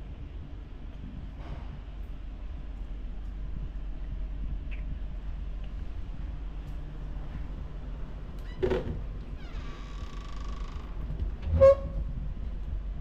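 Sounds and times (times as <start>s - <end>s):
wardrobe door creak: 8.4s - 12.0s.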